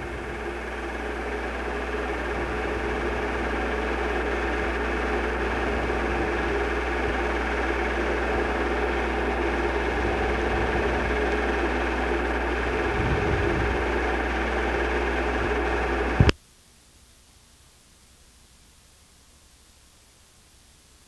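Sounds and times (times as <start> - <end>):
mechanical whir: 0.0 - 16.4
low electrical hum: 0.0 - 21.0
faint hiss: 16.2 - 21.0.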